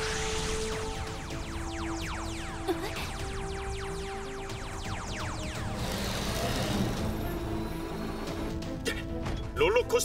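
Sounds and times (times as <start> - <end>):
falling electronic sweeps: 0.0 - 8.5
cartoon soundtrack music: 0.0 - 10.0.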